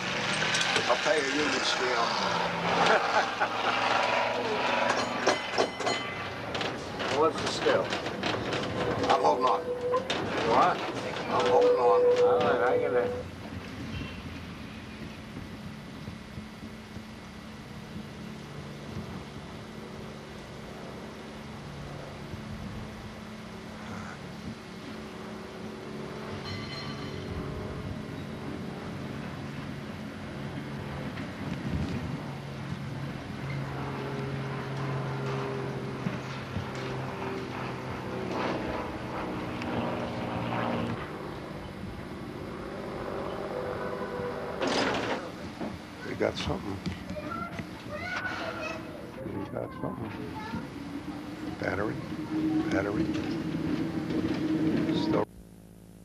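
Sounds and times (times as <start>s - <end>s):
electric trolley humming drone: 0.0s - 56.0s.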